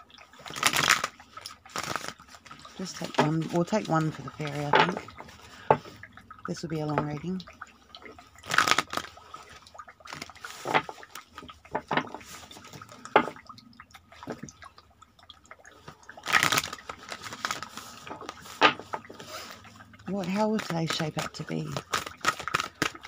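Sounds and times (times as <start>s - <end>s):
cards shuffling: 0.6s - 1.1s, 1.7s - 3.6s, 8.5s - 9.1s, 16.2s - 18.8s, 20.2s - 23.0s
cards clicking: 21.7s - 23.0s.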